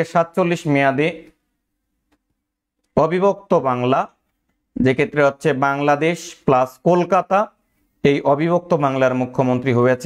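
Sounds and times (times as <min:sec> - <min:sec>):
man speaking: 0:00.0 - 0:01.4, 0:02.9 - 0:10.0.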